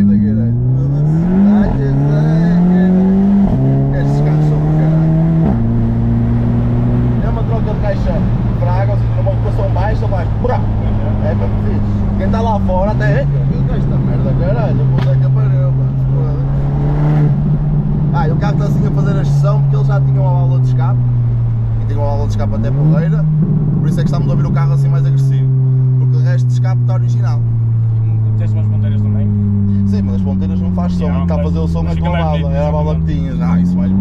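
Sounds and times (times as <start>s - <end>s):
car engine while driving: 0.0s - 34.0s.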